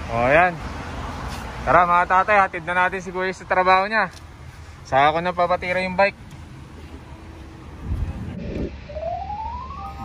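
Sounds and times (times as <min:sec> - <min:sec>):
low outdoor rumble: 0:06.1 - 0:10.0
rising tone: 0:08.3 - 0:10.0.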